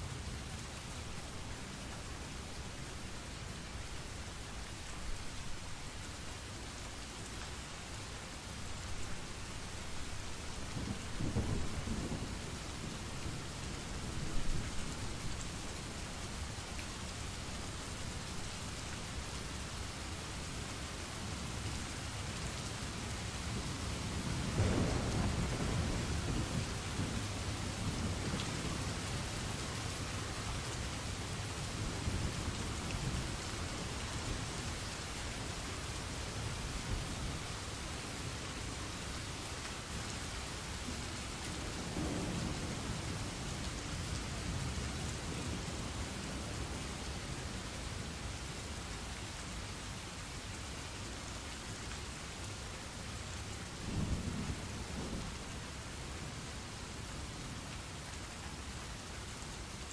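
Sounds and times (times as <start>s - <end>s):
steady rain: 0.0s - 59.9s
low rolls of thunder: 10.7s - 15.5s, 23.4s - 29.2s, 40.9s - 47.0s, 53.8s - 55.5s.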